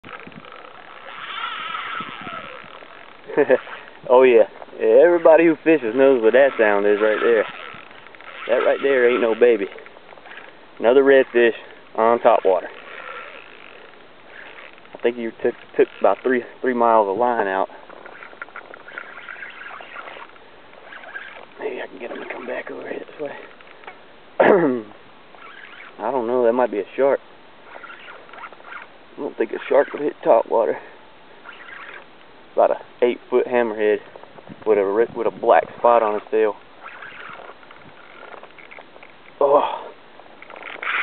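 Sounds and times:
fishing reel drag whining: 0.0s - 24.1s, 25.3s - 41.0s.

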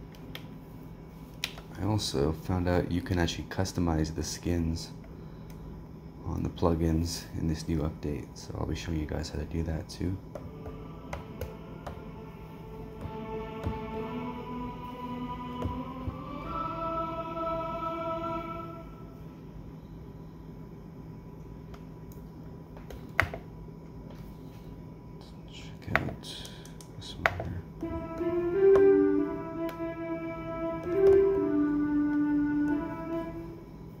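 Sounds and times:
sustained synthetic violin notes: 10.5s - 18.9s, 27.8s - 33.6s
taps on pads and buttons: 26.7s - 29.0s, 30.8s - 31.4s.

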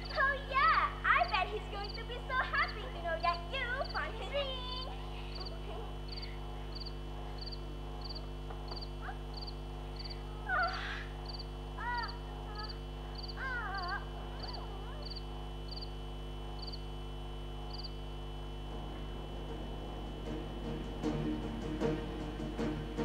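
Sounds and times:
high chirping animal call: 0.0s - 16.0s
loud curved cries: 0.0s - 16.0s
steady electrical hum: 0.0s - 23.0s.

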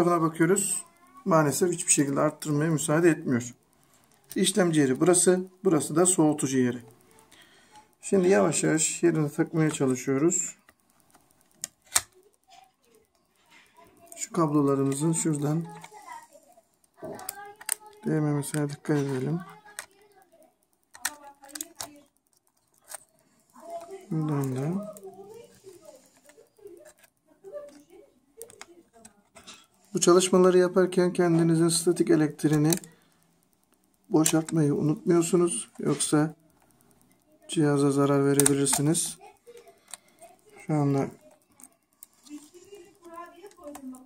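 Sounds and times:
laptop parts clicking: 0.0s - 44.0s
soft voiced hum: 0.0s - 44.0s.

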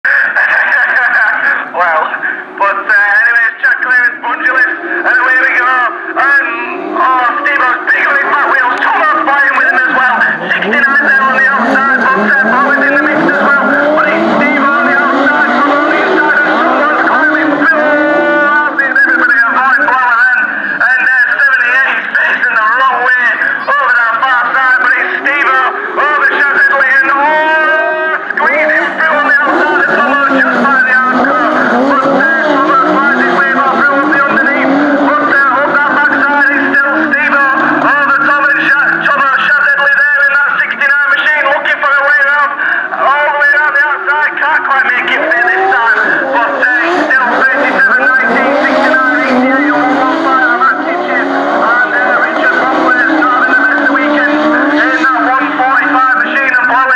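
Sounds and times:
commentator speaking: 0.0s - 56.9s
race car engines revving: 0.0s - 56.9s.

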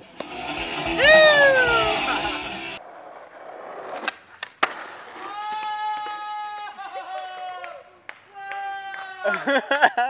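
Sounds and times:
skateboard rolling over pavement: 0.0s - 6.2s
skateboard clacks: 2.9s - 6.5s.

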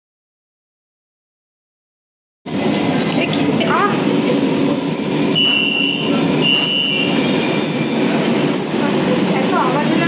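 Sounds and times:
metro train rumbling: 2.5s - 10.0s
short high beep: 4.7s - 8.9s.

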